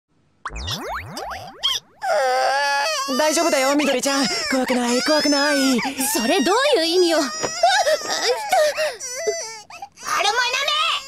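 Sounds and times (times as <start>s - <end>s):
cartoon boing pitch sweeps: 0.4s - 2.0s.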